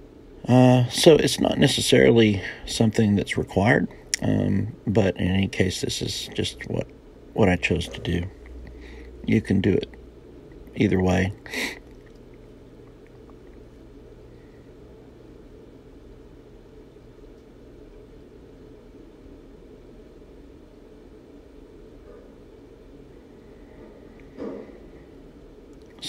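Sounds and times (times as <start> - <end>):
faint low background hum: 0.0 - 26.0.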